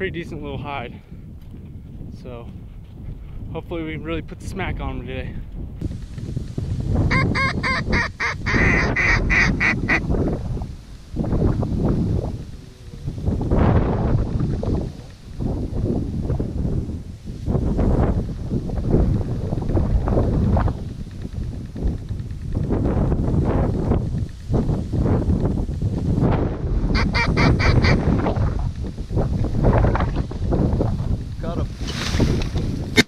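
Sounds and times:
ducks quacking: 7.1 - 10.0, 27.0 - 28.1
geese honking: 7.1 - 10.0, 27.0 - 28.0.

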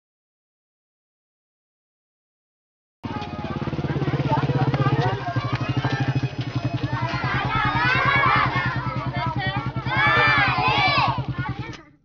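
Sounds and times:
small engine running: 3.0 - 11.8
children's voices: 3.0 - 12.0.

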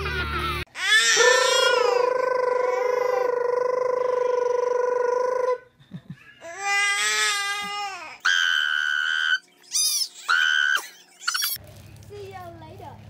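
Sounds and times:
long high-pitched vocal note: 1.2 - 5.6.

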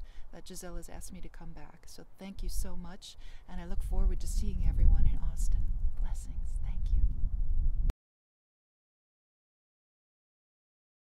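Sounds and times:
wind rumble on microphone: 2.4 - 7.9.

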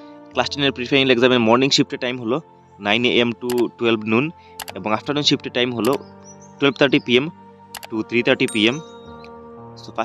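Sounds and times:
background music: 0.0 - 10.0
person speaking: 0.4 - 6.0, 6.6 - 9.0
sharp click: 3.5 - 3.7, 5.8 - 6.0, 7.8 - 8.0.

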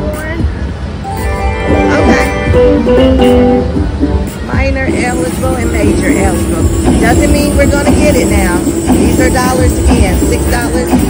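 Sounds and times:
voices: 0.0 - 11.0
slot machine music and effects: 1.0 - 4.3.

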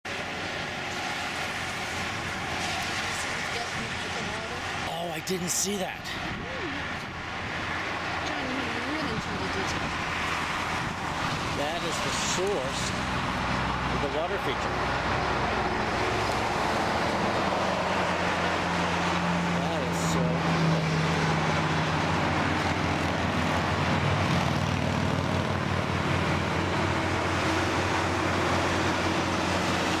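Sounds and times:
highway traffic noise: 0.0 - 30.0
low engine drone: 0.0 - 30.0.

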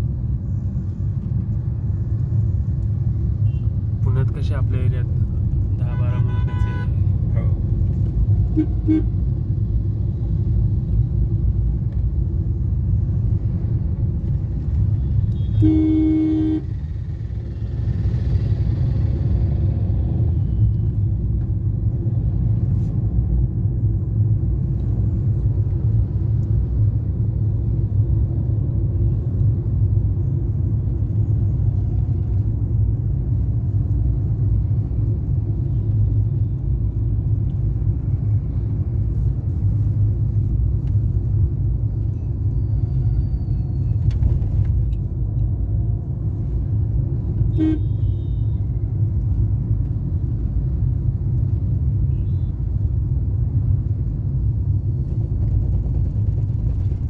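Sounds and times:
car cabin road rumble: 0.0 - 57.0
vehicle horn: 6.0 - 6.9, 8.6 - 9.1, 15.4 - 16.7, 47.5 - 48.5.

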